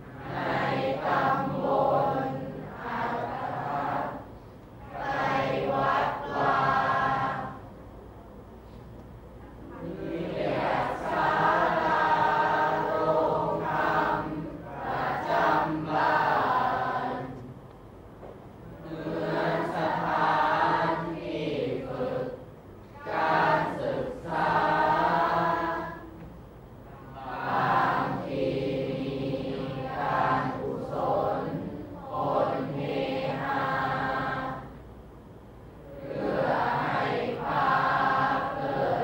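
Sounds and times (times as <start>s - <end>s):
students chanting in unison: 0.0s - 7.8s, 9.6s - 17.6s, 18.6s - 26.3s, 26.9s - 34.8s, 35.8s - 39.0s.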